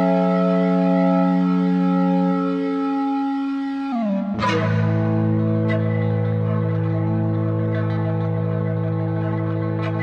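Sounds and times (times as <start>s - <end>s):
long steady synth note: 0.0s - 5.7s.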